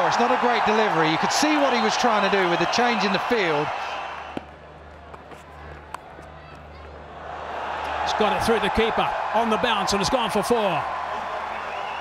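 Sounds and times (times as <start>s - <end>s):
stadium crowd murmur: 0.0s - 12.0s
cricket bat striking ball: 4.3s - 6.6s.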